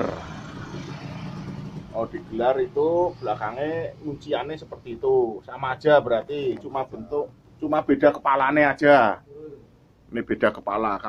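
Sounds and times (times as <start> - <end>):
vehicle engine hum: 0.0 - 7.6.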